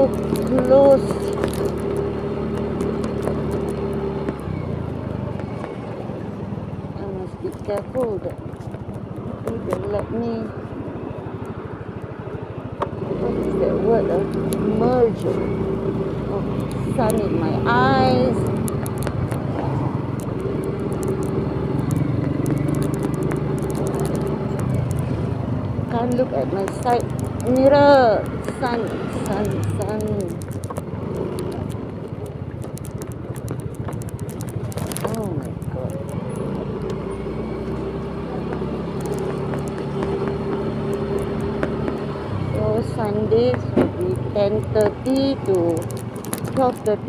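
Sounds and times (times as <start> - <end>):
scattered clicks: 0.0 - 4.6, 7.0 - 10.6, 12.8 - 15.6, 16.2 - 47.0
road and wind noise: 0.0 - 47.0
scooter engine running: 0.0 - 47.0.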